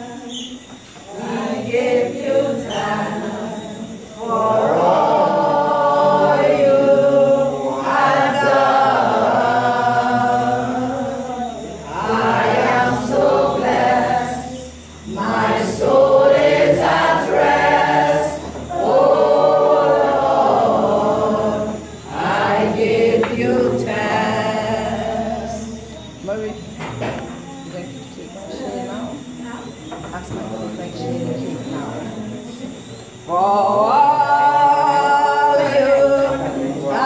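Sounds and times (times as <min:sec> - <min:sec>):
group singing a hymn unaccompanied: 0:00.0 - 0:27.2, 0:28.2 - 0:37.0.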